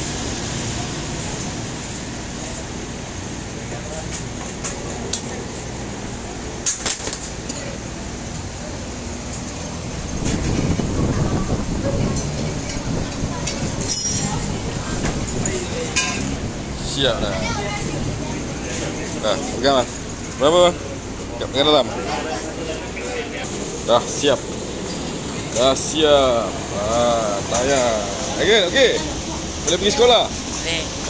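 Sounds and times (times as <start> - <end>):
background traffic noise: 0.0 - 31.0.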